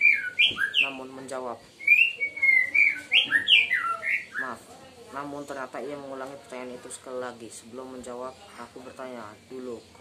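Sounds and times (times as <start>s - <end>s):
songbird singing whistled notes: 0.0s - 1.1s, 1.8s - 4.6s.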